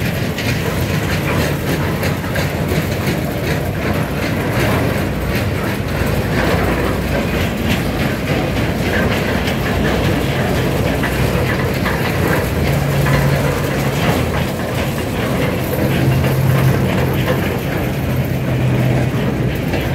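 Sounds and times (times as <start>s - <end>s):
barriers rumbling over asphalt: 0.0s - 19.9s
metal rattling and clanking: 0.0s - 19.9s.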